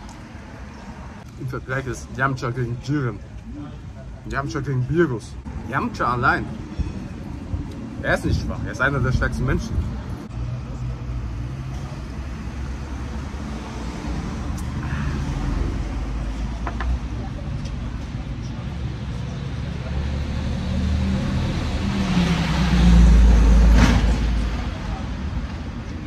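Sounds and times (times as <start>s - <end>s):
road traffic passing: 0.0s - 26.0s.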